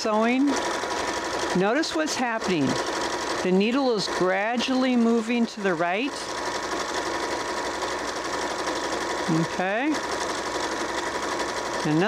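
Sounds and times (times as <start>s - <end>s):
sewing machine running: 0.0s - 12.0s.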